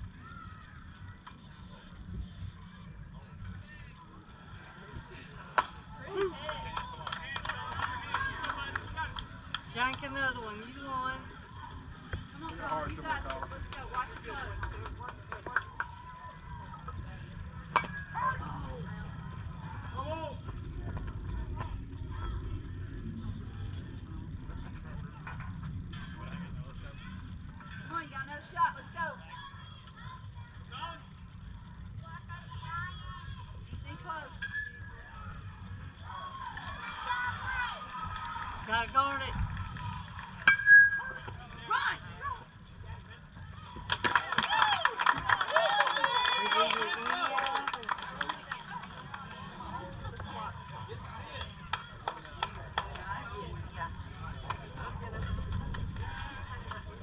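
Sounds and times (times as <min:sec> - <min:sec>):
crowd cheering and clapping: 0:05.5 - 0:21.7, 0:35.9 - 0:41.7, 0:43.5 - 0:57.0
people shouting and calling: 0:35.3 - 0:39.3.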